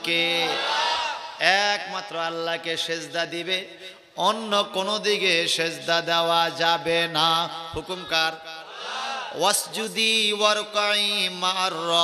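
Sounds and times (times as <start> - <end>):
man chanting melodically: 0.0 - 0.6, 1.4 - 8.6, 9.3 - 12.0.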